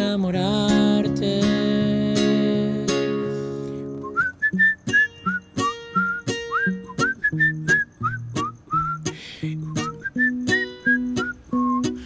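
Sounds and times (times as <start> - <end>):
plucked acoustic guitar: 0.0 - 12.0
man whistling a melody: 0.6 - 12.0.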